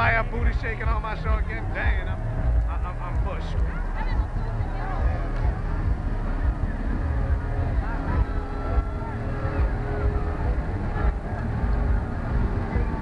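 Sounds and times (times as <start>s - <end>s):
crowd voices and calls: 0.0s - 13.0s
low uneven rumble: 0.0s - 13.0s.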